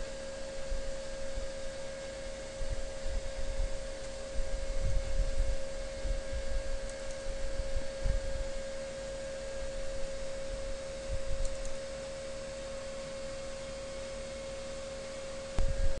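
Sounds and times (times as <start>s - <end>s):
electrical whine: 0.0s - 16.0s.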